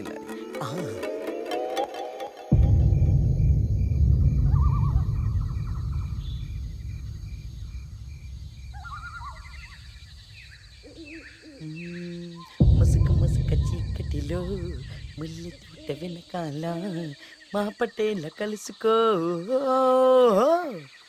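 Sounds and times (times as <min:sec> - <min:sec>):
night ambience chirps: 0:00.0 - 0:21.0
deep rumbling boom: 0:02.5 - 0:10.8, 0:12.6 - 0:15.8
wavering animal-like calls: 0:08.7 - 0:10.0, 0:10.8 - 0:12.6.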